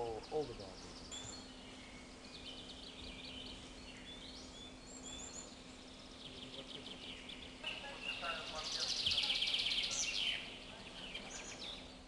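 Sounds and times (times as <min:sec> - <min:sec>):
songbirds chirping: 0:00.0 - 0:12.0
steady low hum: 0:00.0 - 0:12.0.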